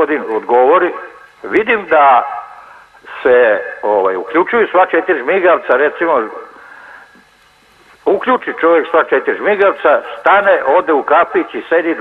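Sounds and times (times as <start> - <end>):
man talking over telephone: 0.0 - 2.4, 3.1 - 6.4, 8.0 - 12.0
faint telephone line hiss: 0.0 - 12.0.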